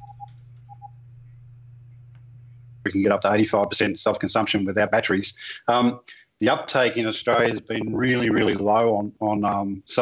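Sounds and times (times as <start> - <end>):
short electronic beeps: 0.0 - 0.9
low electrical hum: 0.0 - 10.0.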